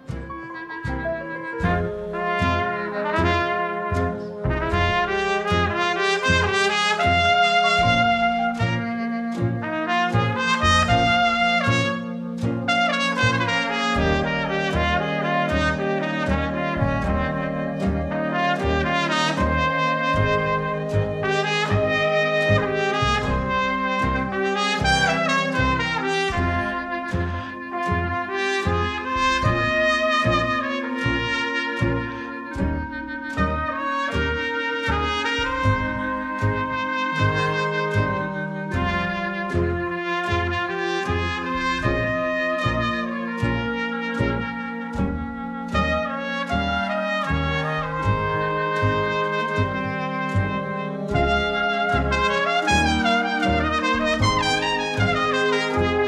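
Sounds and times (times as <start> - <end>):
jazz trumpet solo: 0.0 - 56.0
small jazz band playing: 0.0 - 56.0
upright bass: 0.0 - 56.0.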